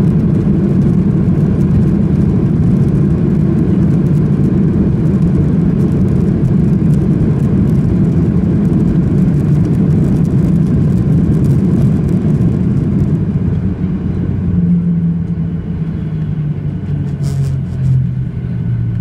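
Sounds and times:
jet engines running: 0.0s - 19.0s
rolling noise from ground: 0.0s - 19.0s.

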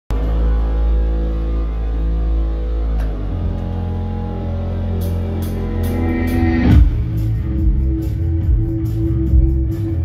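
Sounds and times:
live band music with bass drone: 0.1s - 10.0s.

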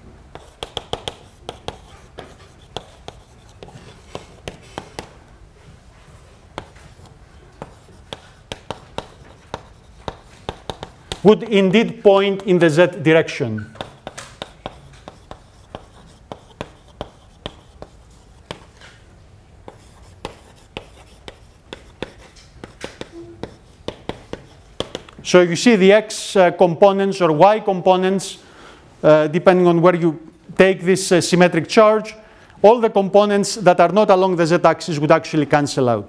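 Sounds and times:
chalk scraping: 0.3s - 5.2s, 6.1s - 18.8s, 19.7s - 25.2s
chalk tapping on blackboard: 0.3s - 5.2s, 6.5s - 12.7s, 13.7s - 18.8s, 19.6s - 25.2s.

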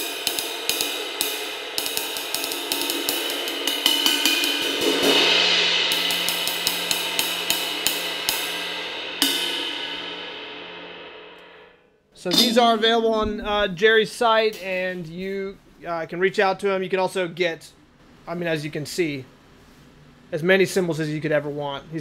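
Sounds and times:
ride cymbal played with drumstick: 0.0s - 13.1s.

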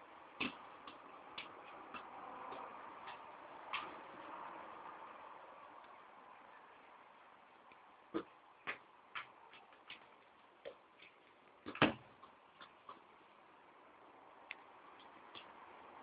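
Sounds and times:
soccer ball kicks: 0.4s - 3.9s, 8.2s - 10.8s, 11.6s - 13.0s.

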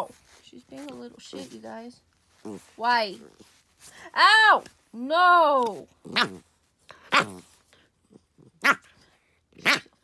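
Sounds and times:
puppy barking: 6.1s - 6.4s, 8.6s - 8.9s, 9.6s - 10.0s.

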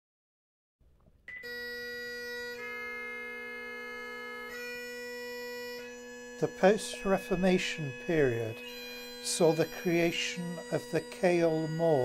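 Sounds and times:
bagpipes playing: 1.4s - 12.0s.

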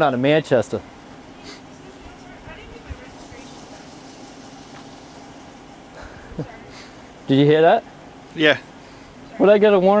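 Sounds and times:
faint distant voices: 0.0s - 10.0s
vehicle hum: 0.0s - 10.0s.

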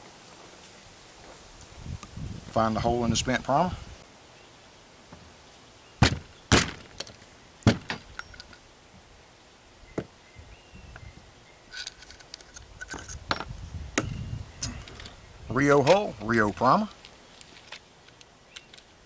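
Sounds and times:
nail punch knocks: 6.0s - 6.9s, 7.7s - 8.1s
small metal parts clinking: 8.1s - 8.6s, 11.7s - 13.5s.

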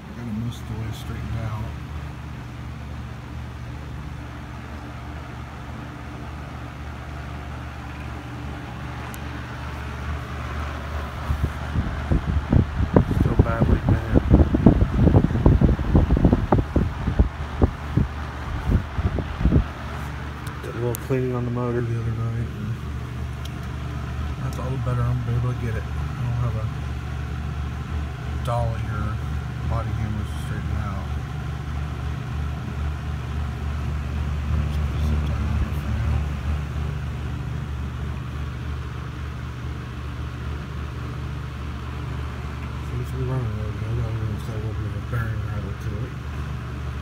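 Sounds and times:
box fan running: 0.0s - 47.0s
fan bearing rattle: 0.0s - 47.0s.

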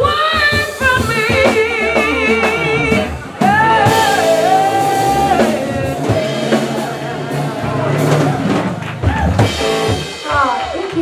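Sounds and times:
live blues band playing: 0.0s - 11.0s
drum hits: 0.4s - 11.0s.

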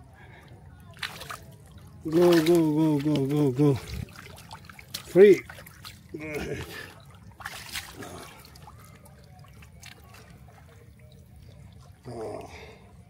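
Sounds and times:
small clicks and splashes: 0.4s - 12.6s
water lapping among rocks: 0.8s - 13.0s.

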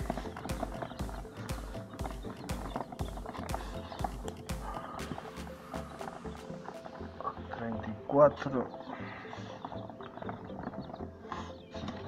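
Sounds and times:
chicks scrabbling in plastic tub: 0.0s - 4.6s
quail chicks peeping: 0.0s - 12.0s.

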